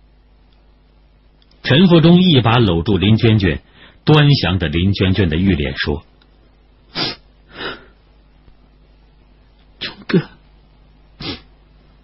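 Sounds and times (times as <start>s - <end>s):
sharp intake of breath: 6.9s - 8.0s, 11.2s - 11.5s.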